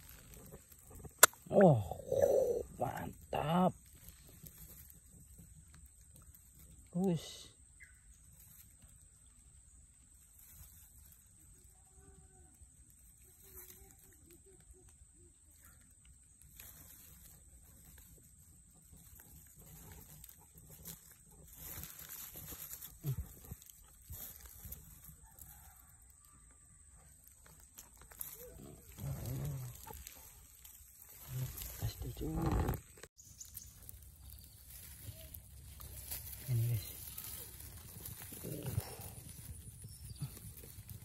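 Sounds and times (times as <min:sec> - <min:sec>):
dry grass rustling: 0:00.0 - 0:41.0
short low voice-like sounds: 0:01.4 - 0:03.8.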